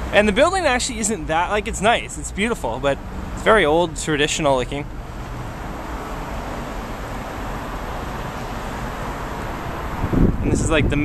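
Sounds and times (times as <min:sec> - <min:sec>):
rush of road traffic: 0:00.0 - 0:11.0.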